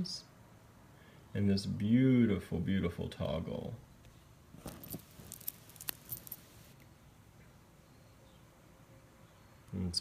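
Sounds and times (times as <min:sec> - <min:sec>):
beaded necklace clinking: 0:04.6 - 0:06.8.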